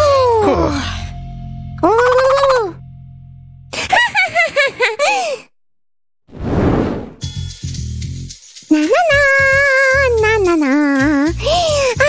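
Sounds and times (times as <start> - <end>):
whoosh sound effect: 6.3 - 7.2.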